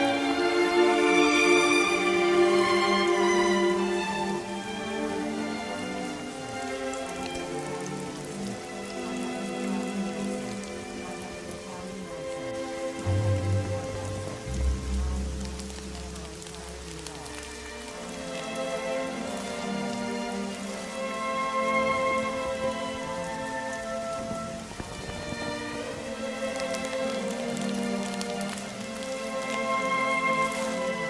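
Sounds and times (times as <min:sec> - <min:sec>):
rain falling steadily: 0:00.0 - 0:31.0
soft ambient music: 0:00.0 - 0:31.0
deep low rumble: 0:13.0 - 0:17.6.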